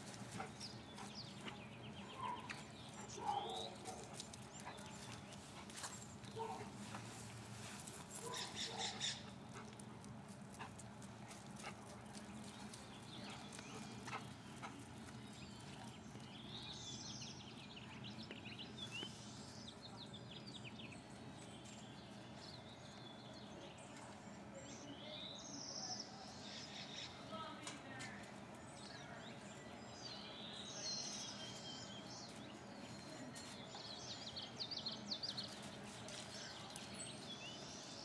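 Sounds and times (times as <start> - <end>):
low outdoor hum: 0.0 - 38.0
dog calls: 8.2 - 9.2
bird calls: 8.2 - 9.3.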